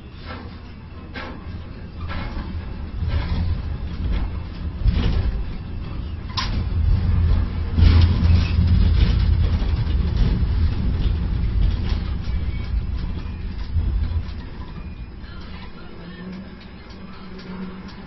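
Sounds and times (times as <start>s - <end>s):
crane machinery rumble: 0.0s - 18.0s.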